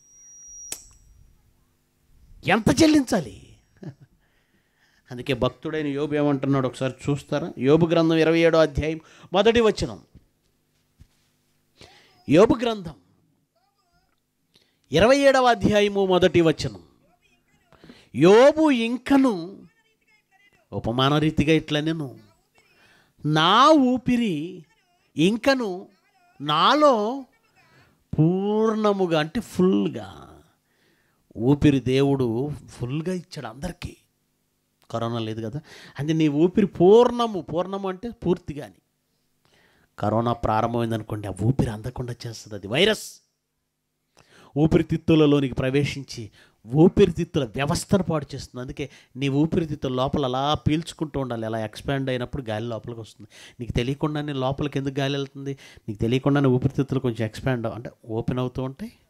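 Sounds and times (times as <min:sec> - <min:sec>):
faint sound system hum: 0:00.0 - 0:59.0.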